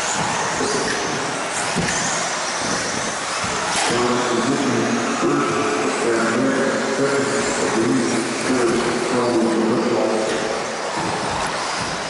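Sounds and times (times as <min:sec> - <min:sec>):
electric model cars racing: 0:00.0 - 0:12.0.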